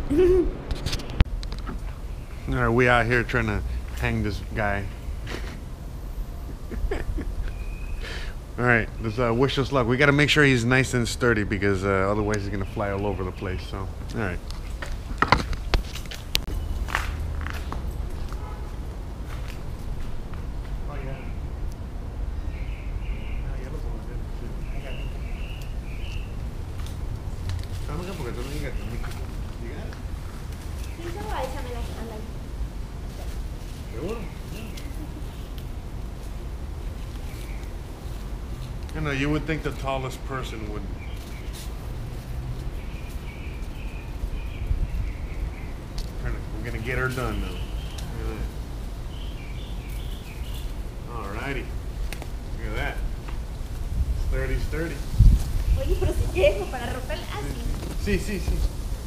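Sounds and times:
steady low rumble: 0:00.0 - 0:46.9, 0:47.7 - 0:59.0
birds chirping: 0:01.2 - 0:59.0.

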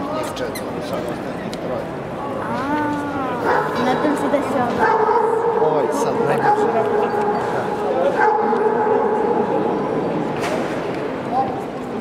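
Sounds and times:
murmuring crowd voices: 0:00.0 - 0:12.0.

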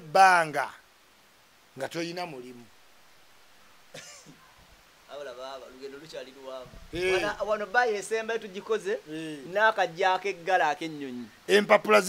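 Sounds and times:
man coughing: 0:03.9 - 0:04.4.

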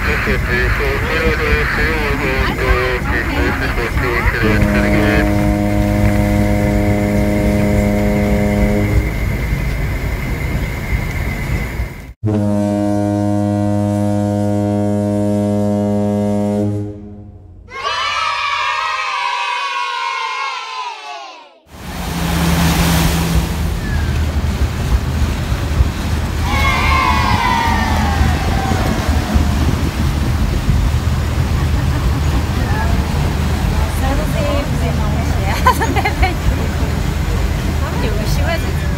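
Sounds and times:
boat engine rumble: 0:00.0 - 0:17.6, 0:21.7 - 0:38.9
steam whistle blasts: 0:04.4 - 0:09.4, 0:12.3 - 0:17.2.

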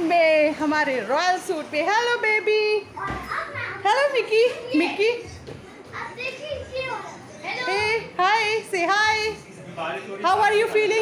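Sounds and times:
child speaking: 0:02.9 - 0:03.8, 0:05.9 - 0:07.9.

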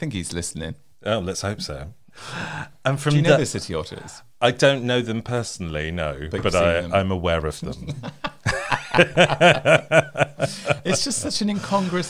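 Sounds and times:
men laughing in chuckles: 0:07.9 - 0:12.0.

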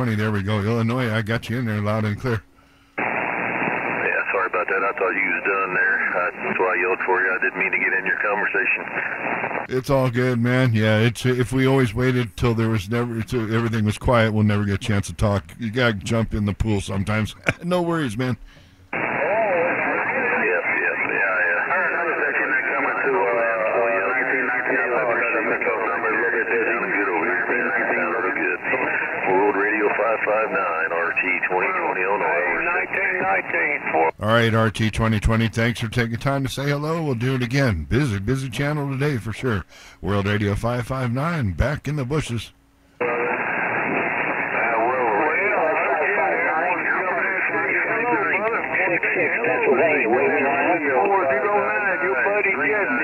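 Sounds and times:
radio static hiss: 0:00.0 - 0:53.0
faint garbled radio voice: 0:03.9 - 0:09.3, 0:19.0 - 0:34.4, 0:43.0 - 0:53.0.

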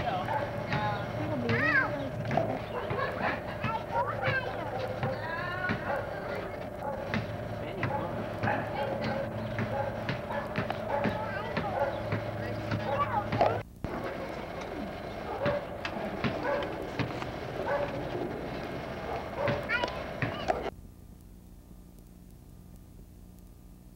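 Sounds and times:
people talking outdoors: 0:00.0 - 0:20.7
faint tape hiss: 0:13.6 - 0:23.9.

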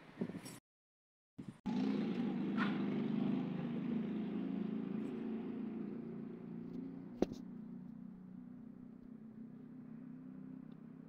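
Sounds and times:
vehicle engine running: 0:01.4 - 0:11.0.

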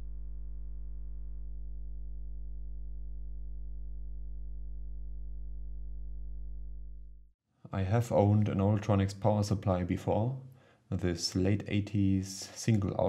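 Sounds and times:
deep electronic hum: 0:00.0 - 0:07.3.

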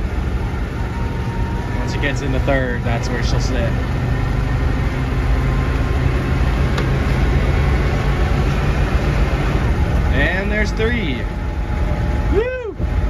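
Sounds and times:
engine droning inside cab: 0:00.0 - 0:13.0
road and wind noise: 0:00.0 - 0:13.0.

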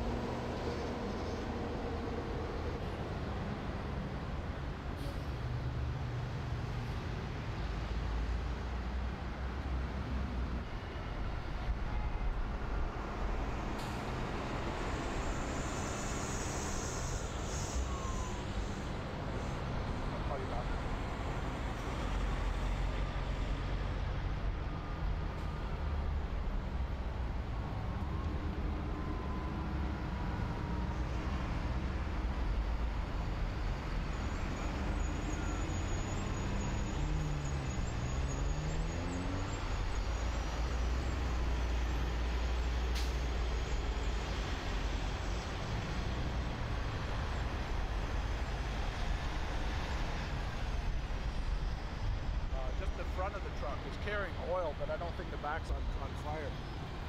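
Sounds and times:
heavy vehicles and road traffic: 0:00.0 - 0:57.0.

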